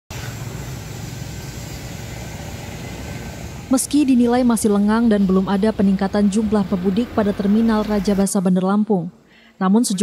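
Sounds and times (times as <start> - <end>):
road traffic rumble: 0.1 - 8.4.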